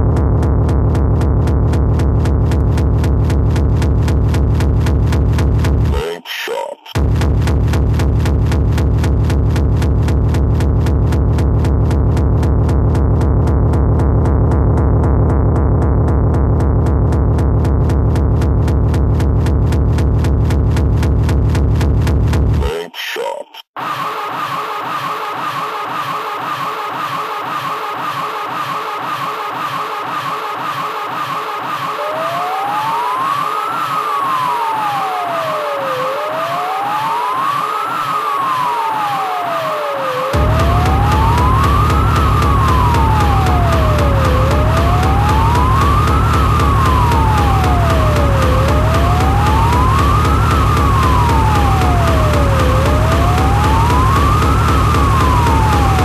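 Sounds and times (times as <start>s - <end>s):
heavy bass drum: 0.0s - 6.0s, 7.0s - 22.7s, 40.4s - 56.0s
electronic dance music beat: 0.0s - 56.0s
siren-like synth tone: 23.8s - 56.0s.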